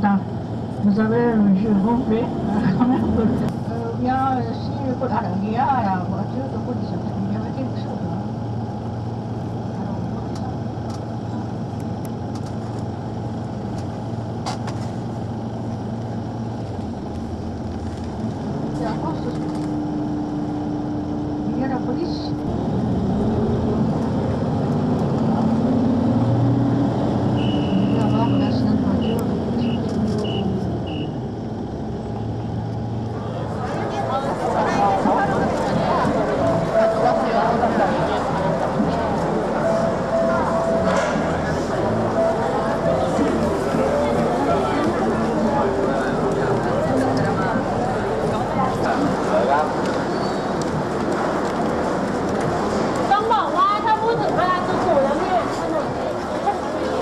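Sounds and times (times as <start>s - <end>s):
crowd voices: 0.0s - 14.7s, 15.5s - 57.0s
low engine hum: 0.0s - 57.0s
road traffic: 0.0s - 57.0s.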